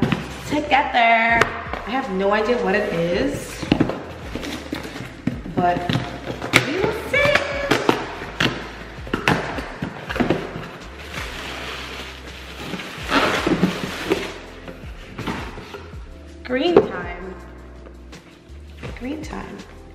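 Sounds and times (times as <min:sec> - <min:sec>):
cardboard knocks and scrapes: 0:02.8 - 0:16.0
packaging rustle: 0:09.8 - 0:14.5.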